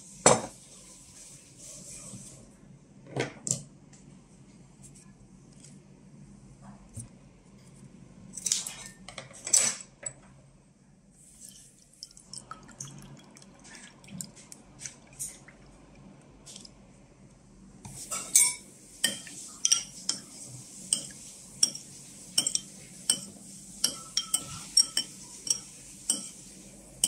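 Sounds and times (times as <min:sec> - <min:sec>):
spoon clinking in ceramic bowl: 0:18.1 - 0:20.3, 0:20.9 - 0:21.8, 0:22.4 - 0:26.4.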